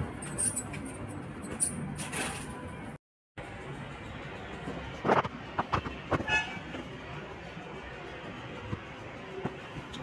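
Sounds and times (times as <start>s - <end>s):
high-pitched horn toot: 6.2s - 6.6s.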